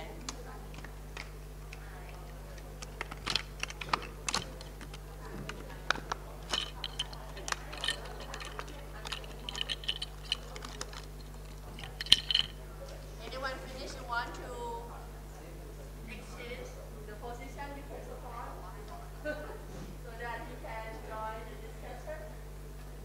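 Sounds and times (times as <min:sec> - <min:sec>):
low room hum: 0:00.0 - 0:23.0
clicks and taps: 0:00.2 - 0:12.5.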